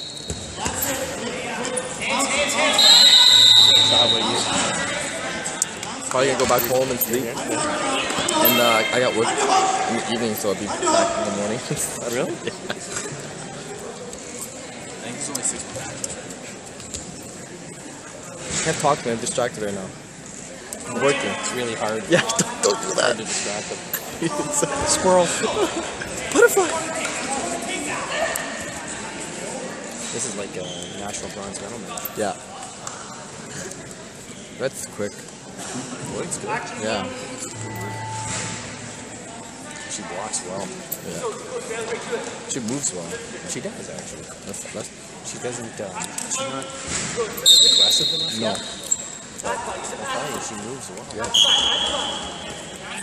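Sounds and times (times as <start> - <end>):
indoor sports hall room noise: 0.0 - 53.0
referee's whistle long blast: 2.6 - 4.5, 47.4 - 48.6, 51.4 - 52.4.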